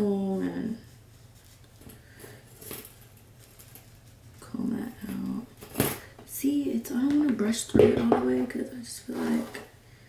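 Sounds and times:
hot comb rustling through hair: 0:00.0 - 0:06.4.

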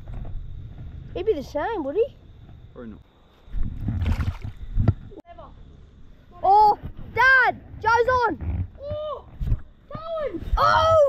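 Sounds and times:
water splashing and sloshing: 0:03.5 - 0:05.1.

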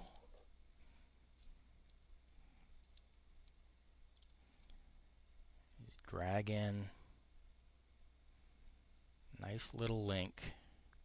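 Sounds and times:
computer mouse clicks: 0:02.8 - 0:04.8.

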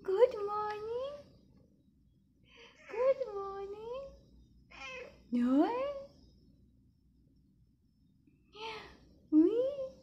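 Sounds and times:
cat meowing: 0:04.7 - 0:05.2.

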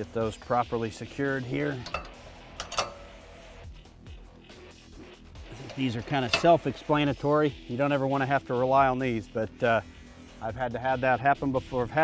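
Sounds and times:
background music: 0:00.0 - 0:12.0
metal chain clinking on hitch: 0:01.8 - 0:03.2.

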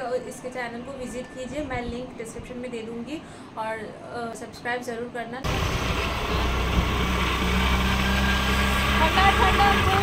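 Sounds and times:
road or wind noise: 0:05.4 - 0:10.0
vehicle engine humming: 0:05.4 - 0:10.0.

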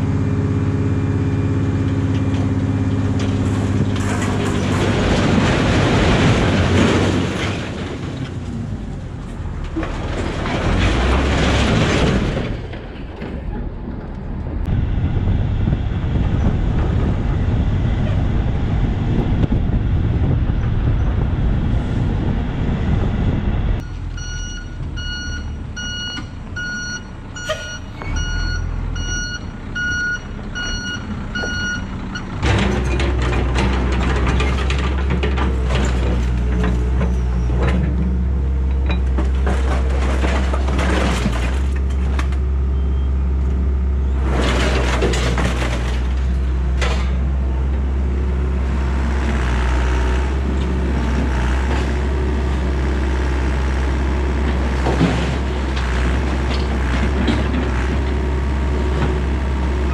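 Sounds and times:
excavator diesel engine running: 0:00.0 - 0:59.9
scrap metal rumbling and scraping: 0:00.0 - 0:59.9
reversing alarm beeping: 0:23.8 - 0:32.3.

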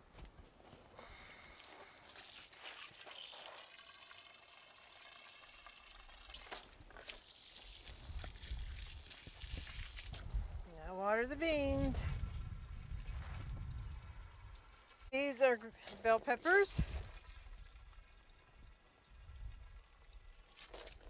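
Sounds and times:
water from hose splashing: 0:01.5 - 0:10.5, 0:11.4 - 0:21.0
low rumble: 0:12.0 - 0:15.1.

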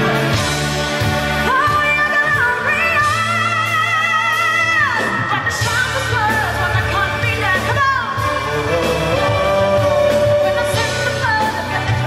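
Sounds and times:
live band playing: 0:00.0 - 0:12.0
woman singing: 0:01.4 - 0:12.0.

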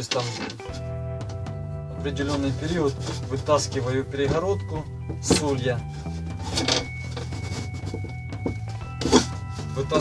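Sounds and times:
background music with steady tones: 0:00.0 - 0:10.0
plywood scraping against wood: 0:00.0 - 0:10.0.

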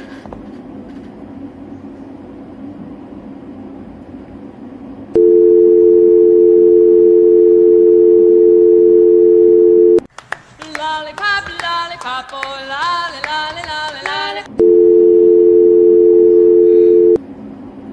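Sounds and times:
telephone dial tone: 0:05.2 - 0:10.1, 0:14.6 - 0:17.2.

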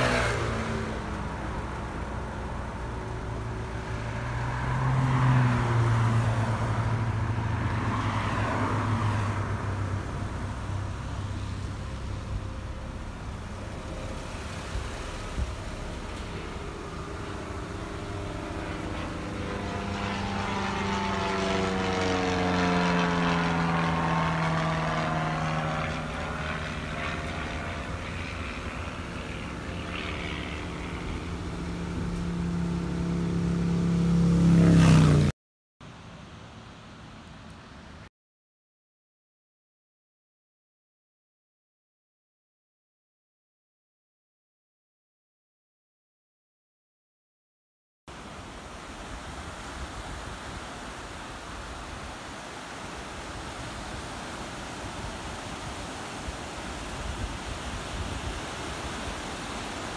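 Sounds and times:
engine hum: 0:00.0 - 0:38.1
traffic and road noise: 0:00.0 - 0:38.1, 0:48.1 - 0:59.9.

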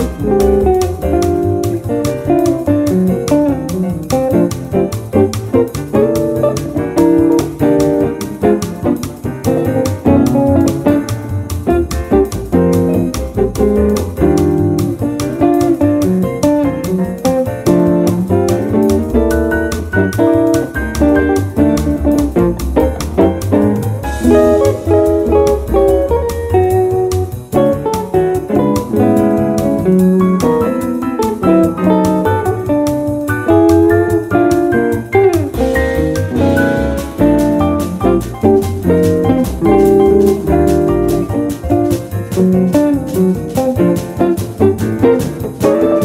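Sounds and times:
bass line: 0:00.0 - 0:46.0
electric guitar swing jazz line: 0:00.0 - 0:46.0
quick steady beat: 0:00.0 - 0:46.0.

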